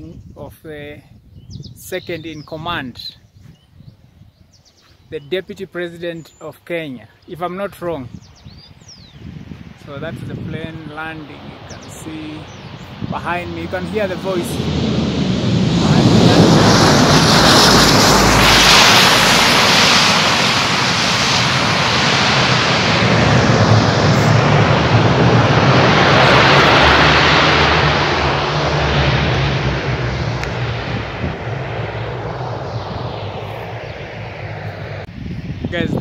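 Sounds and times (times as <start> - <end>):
aircraft engine roar: 8.1 - 36.0.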